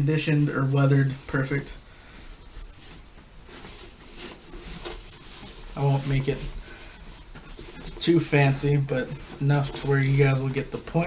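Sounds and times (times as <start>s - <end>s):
cloth helmet cover rustling: 0.0s - 11.0s.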